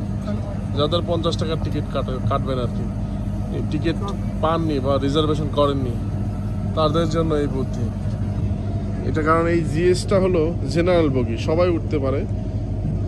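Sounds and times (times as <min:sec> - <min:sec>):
low engine hum: 0:00.0 - 0:13.0
people talking: 0:00.1 - 0:06.1, 0:06.7 - 0:12.3.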